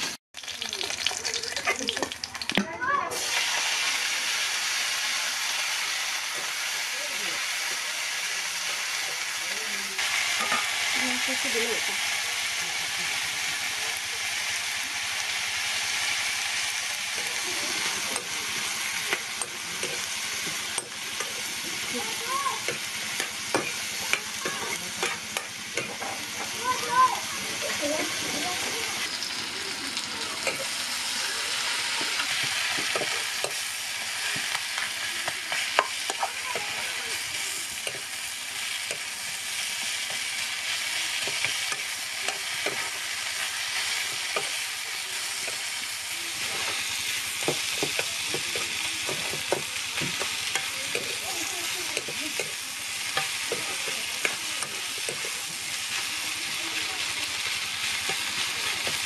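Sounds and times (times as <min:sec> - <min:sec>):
food sizzling in oil: 0:00.0 - 0:59.0.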